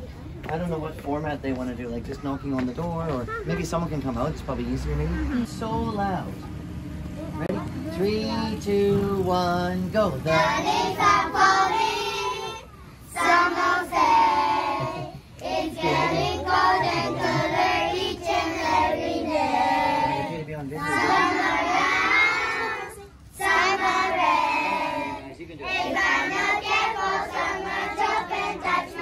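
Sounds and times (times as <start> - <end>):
children singing: 10.3 - 29.0.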